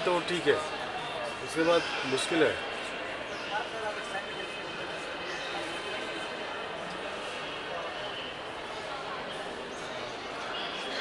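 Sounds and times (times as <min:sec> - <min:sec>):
indistinct background chatter: 0:00.0 - 0:11.0.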